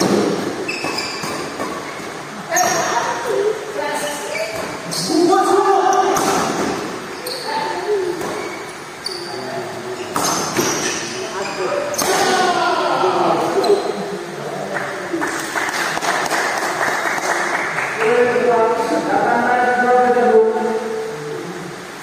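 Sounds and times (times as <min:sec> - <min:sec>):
voices in echoing hall: 0:00.0 - 0:22.0.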